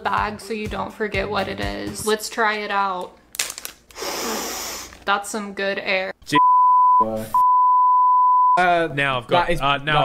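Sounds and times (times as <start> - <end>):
man speaking: 6.3 - 7.4
censor bleep tone: 6.4 - 8.6.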